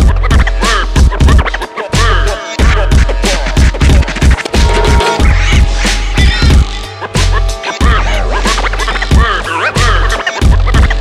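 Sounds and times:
hip hop beat with deep bass: 0:00.0 - 0:11.0
turntable scratching: 0:00.0 - 0:11.0.

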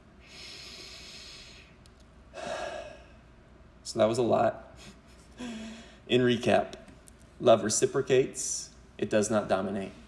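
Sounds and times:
man breathing: 0:00.2 - 0:03.4, 0:04.8 - 0:06.1.

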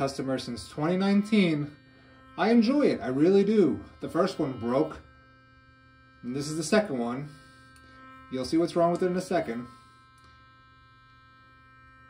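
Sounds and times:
electric toothbrush buzzing: 0:00.0 - 0:12.0.

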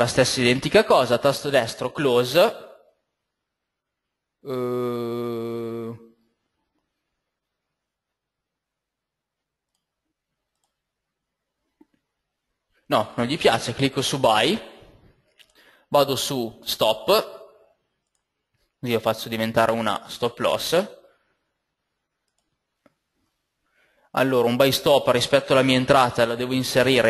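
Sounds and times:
computer mouse clicks: 0:09.6 - 0:10.9, 0:18.0 - 0:18.3, 0:22.2 - 0:23.0.

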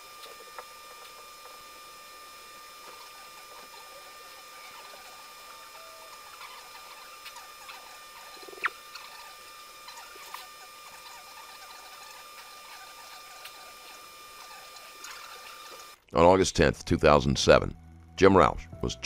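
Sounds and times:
faint high whine: 0:00.0 - 0:19.0.

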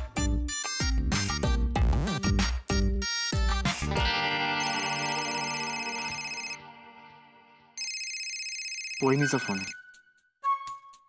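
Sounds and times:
mobile phone ringtone: 0:04.6 - 0:06.8, 0:07.8 - 0:10.0.

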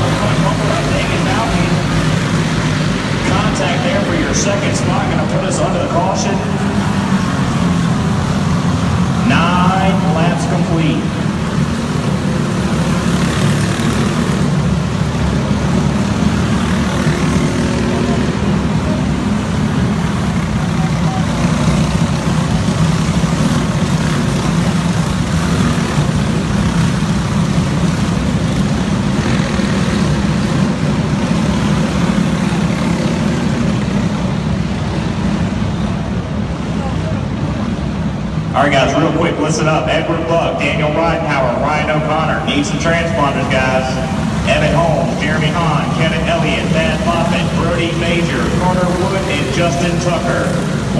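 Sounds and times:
kart engines droning: 0:00.0 - 0:50.9.

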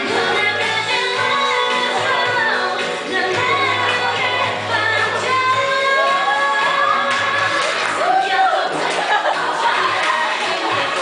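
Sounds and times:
pop song with woman singing: 0:00.0 - 0:11.0.

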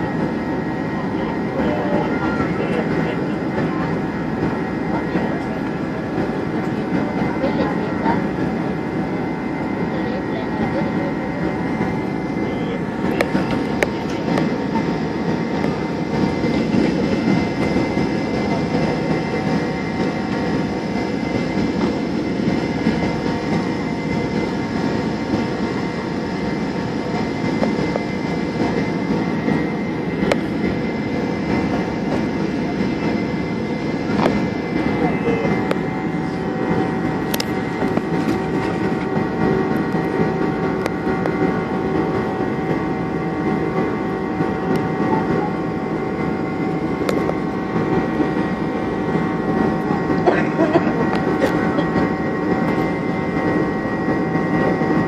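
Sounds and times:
jet engines and rushing air: 0:00.0 - 0:55.0.

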